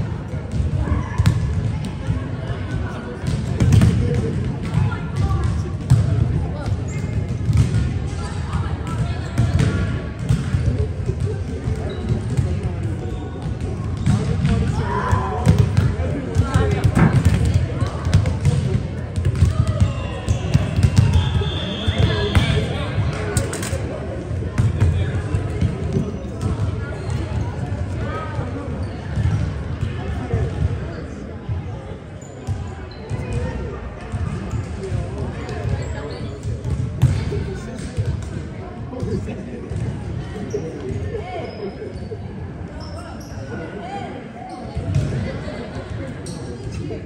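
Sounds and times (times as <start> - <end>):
volleyballs struck and bouncing: 8.8 - 21.2.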